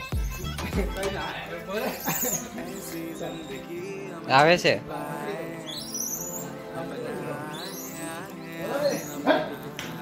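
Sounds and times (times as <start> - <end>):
background song: 0.0 - 10.0.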